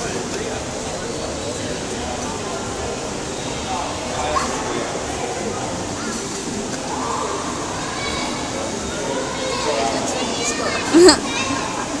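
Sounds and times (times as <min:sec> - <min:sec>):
people chattering: 0:00.0 - 0:12.0
child laughing: 0:10.9 - 0:11.3.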